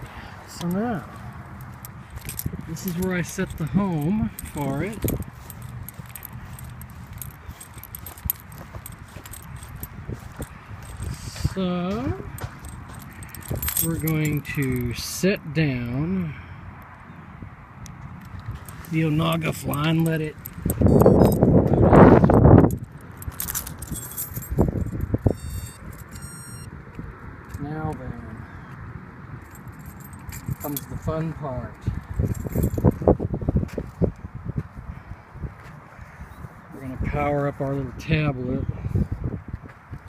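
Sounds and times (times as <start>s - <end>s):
wind rumble on microphone: 0.0s - 15.1s, 15.8s - 40.0s
handling rustle: 0.5s - 15.1s, 18.2s - 26.7s, 31.8s - 33.2s
keys jingling: 0.6s - 15.2s, 18.2s - 26.7s, 29.4s - 33.2s.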